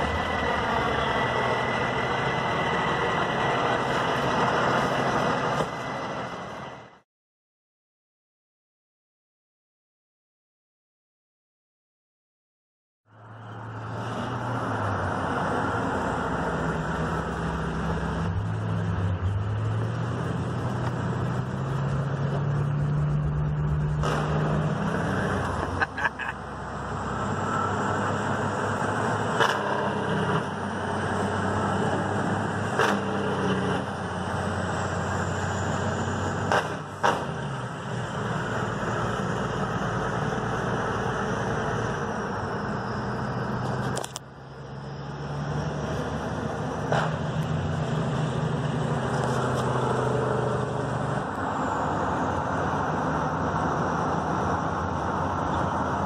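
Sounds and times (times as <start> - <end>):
car road noise: 0.0 - 7.0, 13.0 - 56.0
truck diesel engine: 0.0 - 7.0, 13.1 - 56.0.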